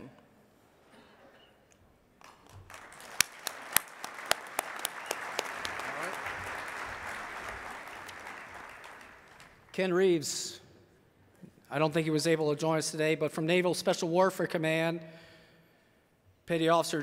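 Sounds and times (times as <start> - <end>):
audience applauding: 2.2 - 9.8
sharp close claps: 2.2 - 9.8.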